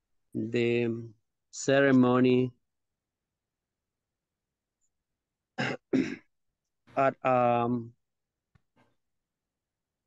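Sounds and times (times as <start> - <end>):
person clearing throat: 5.6 - 6.3.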